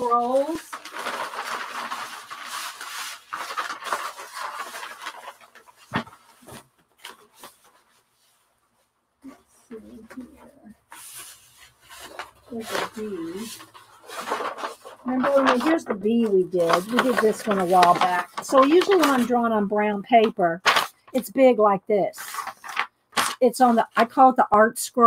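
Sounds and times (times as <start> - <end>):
paper rustling and crinkling: 0.0 - 8.8, 9.8 - 21.3, 22.2 - 24.3.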